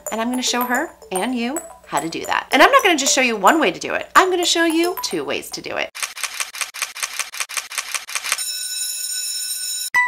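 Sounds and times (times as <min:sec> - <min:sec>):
rapid shutter-like clicks: 0:06.0 - 0:08.4.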